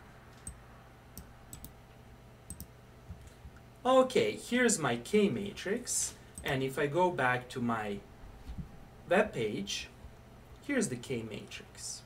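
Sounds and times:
low steady hum: 0:00.0 - 0:12.0
computer mouse clicks: 0:00.4 - 0:00.6, 0:01.2 - 0:01.8, 0:02.5 - 0:03.6.

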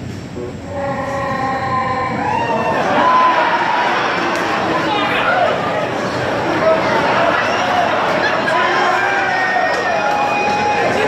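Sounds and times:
audience cheering and whooping: 0:02.2 - 0:11.0.

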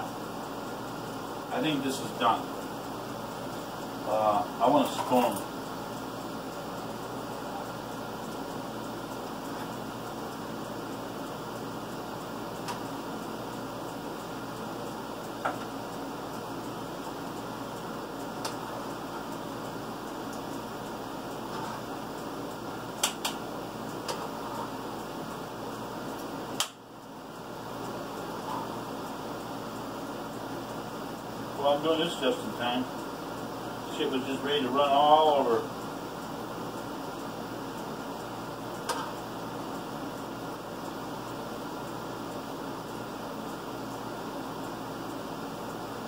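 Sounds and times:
fan-like room hum: 0:00.0 - 0:46.0
sharp click: 0:23.0 - 0:23.4, 0:26.6 - 0:26.8.

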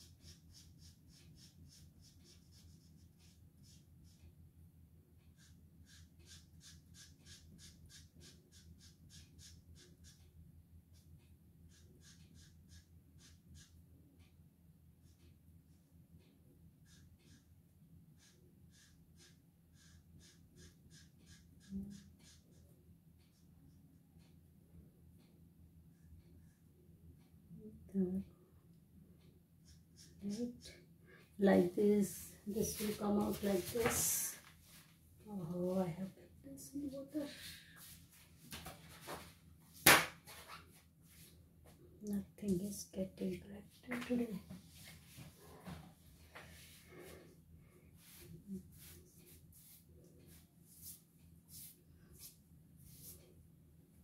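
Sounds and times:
marker scratching on paper: 0:00.0 - 0:04.3, 0:05.3 - 0:10.3, 0:10.9 - 0:13.8, 0:16.8 - 0:17.5, 0:18.1 - 0:23.5, 0:29.6 - 0:30.6, 0:32.5 - 0:34.3, 0:48.0 - 0:53.3
low steady hum: 0:00.0 - 0:39.8
paper rustling: 0:32.6 - 0:34.2.

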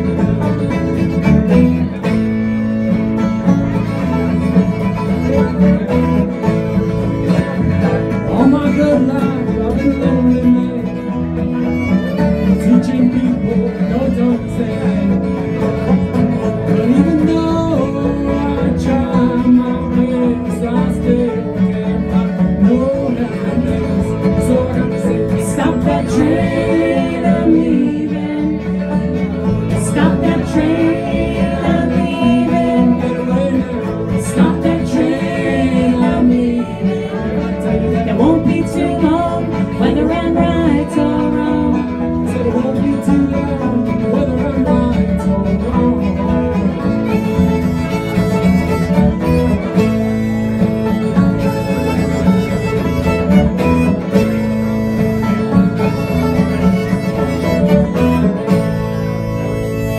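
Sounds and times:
acoustic guitar: 0:00.0 - 0:59.9
banjo: 0:00.0 - 0:59.9
electric bass: 0:00.0 - 0:59.9
fiddle: 0:00.0 - 0:59.9.

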